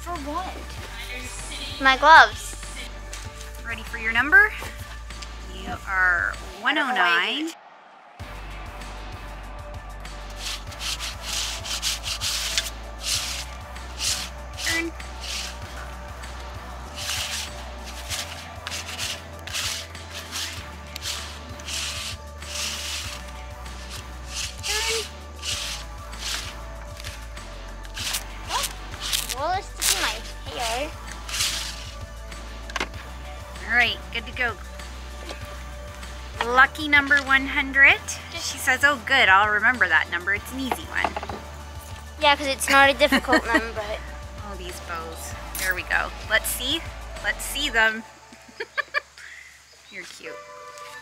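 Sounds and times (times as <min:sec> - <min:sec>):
cloth rubbing and rustling: 0:16.9 - 0:27.2.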